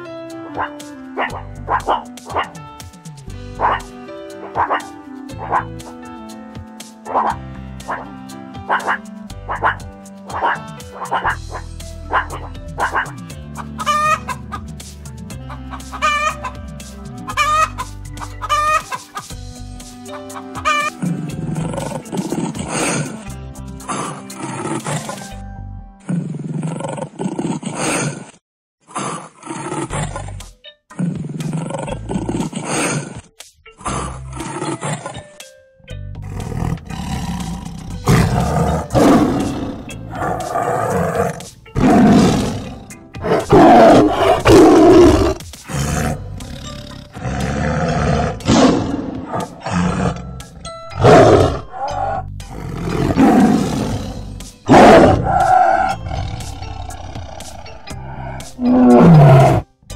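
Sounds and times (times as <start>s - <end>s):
background music: 0.0s - 26.2s, 29.6s - 59.9s
tiger roaring: 21.0s - 23.2s, 29.0s - 30.4s, 33.9s - 35.2s, 36.2s - 59.7s.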